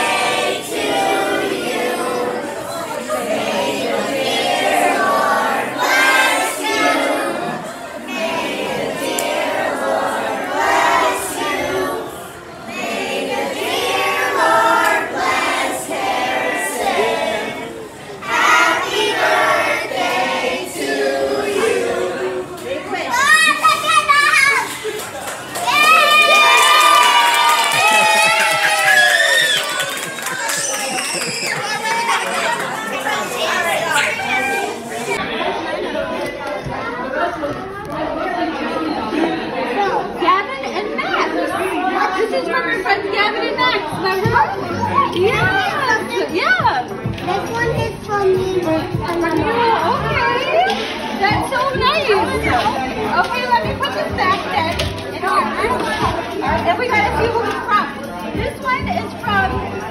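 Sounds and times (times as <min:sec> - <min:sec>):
overlapping party chatter: 0:00.0 - 0:59.9
children talking: 0:01.0 - 0:59.9.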